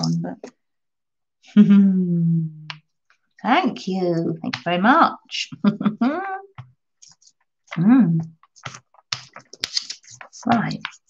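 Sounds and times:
brayer rolling through wet paint: 6.6s - 11.0s.

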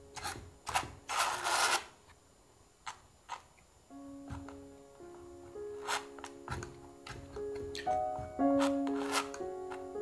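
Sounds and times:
palette knife scraping canvas: 0.2s - 2.0s, 5.8s - 6.7s, 8.6s - 9.4s
background music with held notes: 3.9s - 10.0s.

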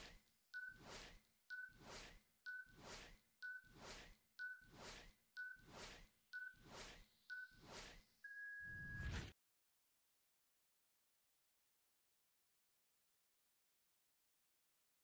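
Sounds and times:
timer tick: 0.0s - 8.0s.

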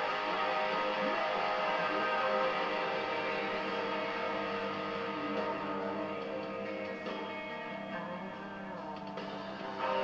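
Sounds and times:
electric guitar chords: 0.0s - 10.0s.

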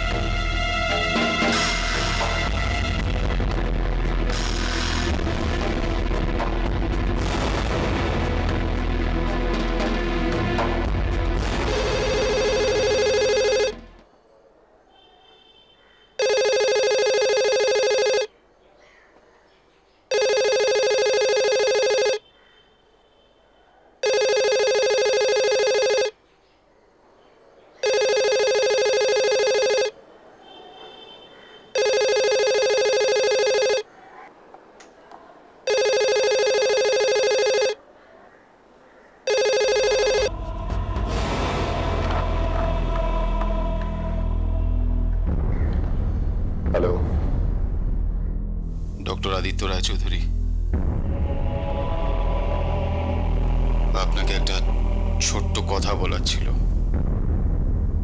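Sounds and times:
telephone ringing: 11.7s - 14.0s, 16.2s - 18.3s, 20.1s - 22.3s, 24.0s - 26.2s, 27.8s - 30.0s, 30.9s - 33.9s, 35.7s - 37.8s, 39.2s - 40.3s
low rumble with music: 40.3s - 49.5s, 50.2s - 58.0s.

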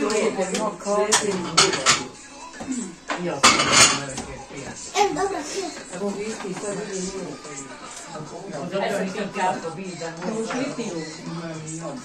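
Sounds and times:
dishes and cutlery clattering: 0.0s - 4.5s, 10.2s - 11.0s.

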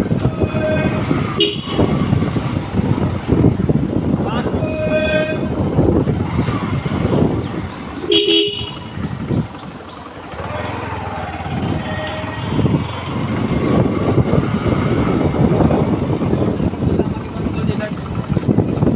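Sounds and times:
motorcycle running: 0.0s - 18.9s
wind buffeting microphone: 0.0s - 18.9s
vehicle horn short beeps: 1.4s - 1.8s, 8.1s - 8.9s.

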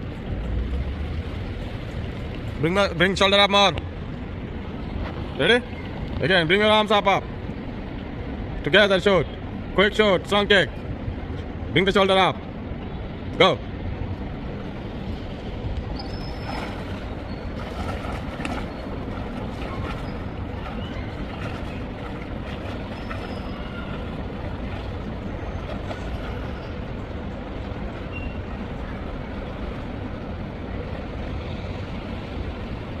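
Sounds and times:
rushing pool water: 13.3s - 33.0s
faint splashes: 16.0s - 29.8s.

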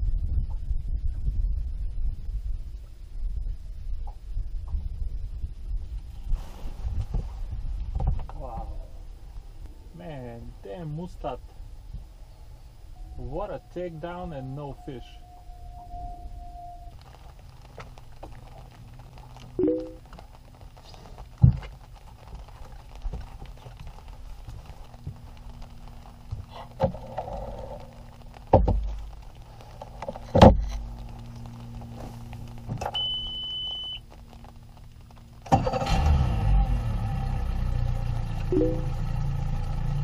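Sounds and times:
electronic beep: 19.6s - 20.0s, 33.0s - 34.0s, 38.5s - 38.9s
knocks and thumps of gear: 21.2s - 23.8s, 26.2s - 29.2s, 29.8s - 30.9s.

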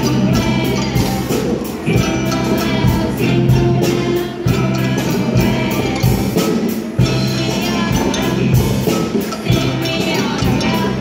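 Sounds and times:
children singing together: 0.0s - 11.0s
djembe hand drums: 0.0s - 11.0s
drum kit: 0.0s - 11.0s
guitars: 0.0s - 11.0s.

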